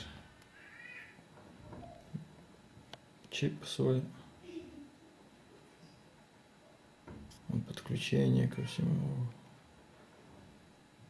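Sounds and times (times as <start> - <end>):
faint animal call: 0.5 - 1.2.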